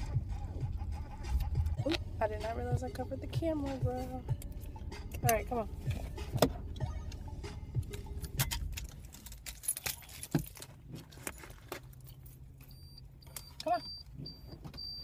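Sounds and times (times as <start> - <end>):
low engine rumble: 0.0 - 15.0
car warning chime beeping: 1.7 - 8.4, 12.6 - 15.0
car keys jangling: 3.4 - 15.0.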